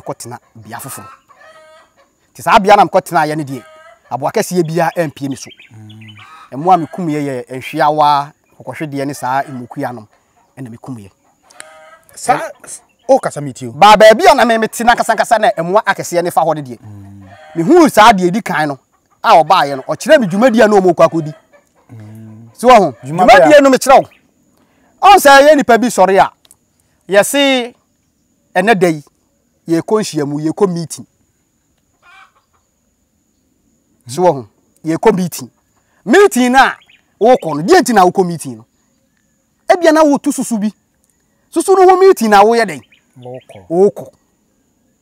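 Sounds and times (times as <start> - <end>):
rooster crowing faintly: 16.8 - 17.7, 19.6 - 23.7.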